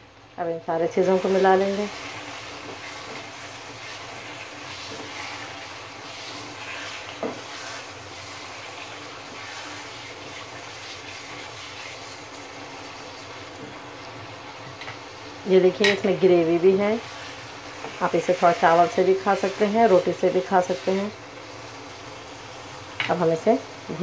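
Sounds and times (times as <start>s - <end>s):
curry sizzling in oil: 0.0s - 24.0s.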